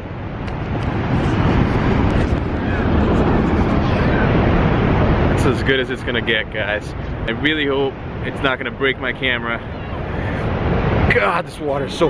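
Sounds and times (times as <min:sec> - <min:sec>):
waterfall roar: 0:00.0 - 0:12.0
wind buffeting microphone: 0:00.0 - 0:12.0.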